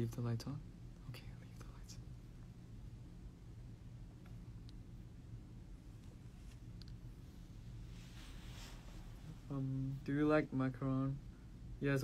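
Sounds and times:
man whispering: 0:00.0 - 0:02.1, 0:09.2 - 0:11.3
low steady hum: 0:00.0 - 0:12.0.

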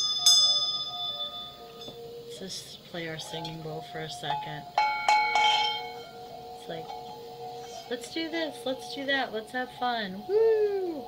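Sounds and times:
brass hand bell ringing: 0:00.0 - 0:02.0, 0:04.8 - 0:06.2.

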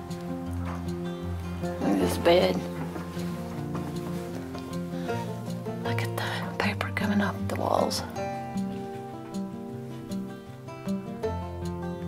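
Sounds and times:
soft acoustic guitar music: 0:00.0 - 0:12.0.

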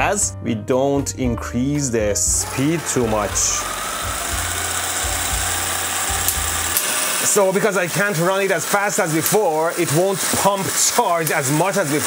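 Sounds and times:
low motor hum: 0:02.2 - 0:07.6.

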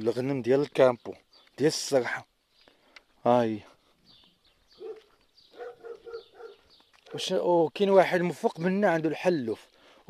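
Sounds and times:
dog barking faintly: 0:04.8 - 0:07.3.

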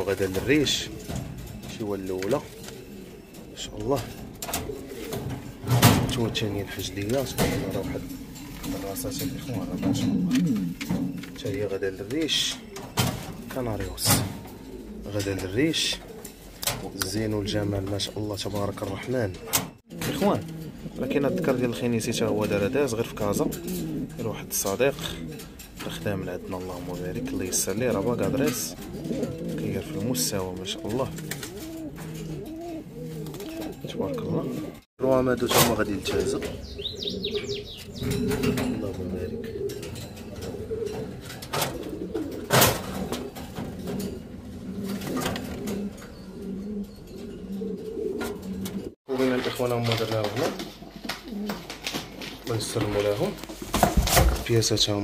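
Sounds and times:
pigeon cooing: 0:00.0 - 0:16.8, 0:19.3 - 0:34.9, 0:35.6 - 0:49.0.

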